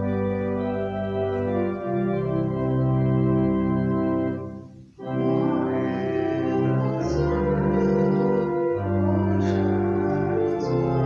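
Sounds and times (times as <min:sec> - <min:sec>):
organ playing hymn chords: 0:00.0 - 0:11.0.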